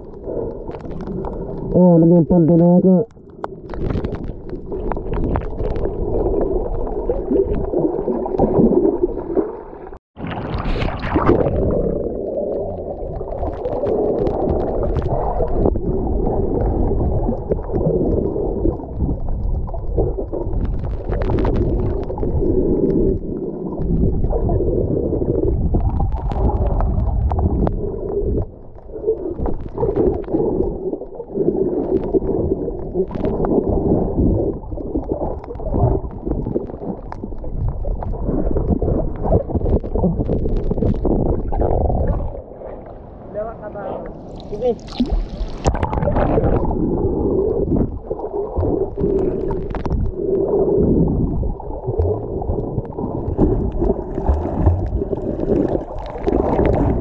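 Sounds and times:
muffled underwater rumble: 0:00.0 - 0:57.0
water gurgling and bubbling: 0:00.0 - 0:57.0.

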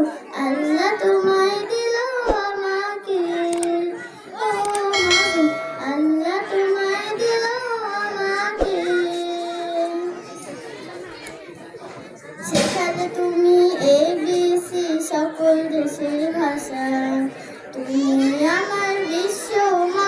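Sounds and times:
child singing: 0:00.0 - 0:10.4, 0:12.4 - 0:20.0.

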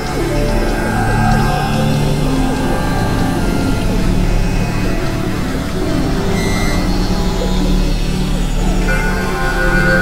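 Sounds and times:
layered synthesizer tones: 0:00.0 - 0:10.0
steady low drone: 0:00.0 - 0:10.0.

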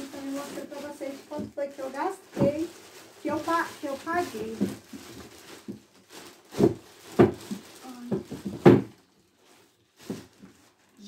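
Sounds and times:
plastic bag rustling and crinkling: 0:00.0 - 0:11.0.

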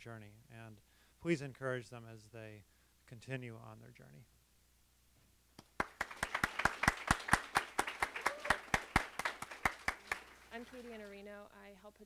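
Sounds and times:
close hand claps: 0:05.6 - 0:10.5
audience applause: 0:05.8 - 0:10.6.

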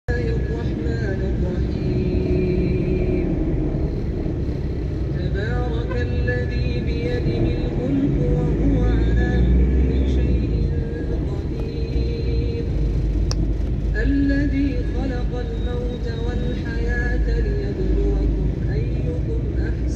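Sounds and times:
road traffic rumble: 0:00.1 - 0:19.9.

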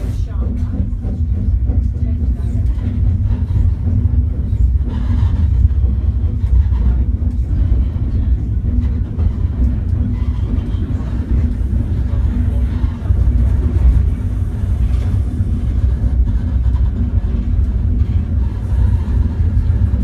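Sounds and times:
steam locomotive rumbling: 0:00.0 - 0:20.0.

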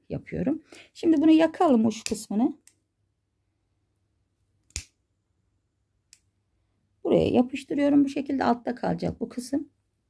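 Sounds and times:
lighter click: 0:04.6 - 0:05.0.

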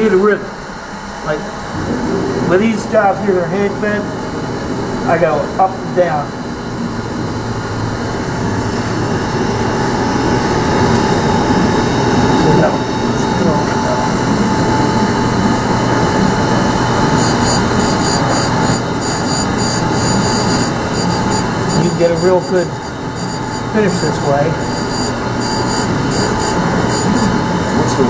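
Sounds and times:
grinder wheel humming and whining: 0:06.7 - 0:28.0
grinding metal crackle: 0:16.8 - 0:27.8.

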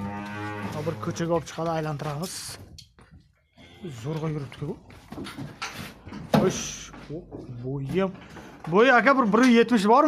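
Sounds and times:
cow mooing: 0:00.0 - 0:01.2.

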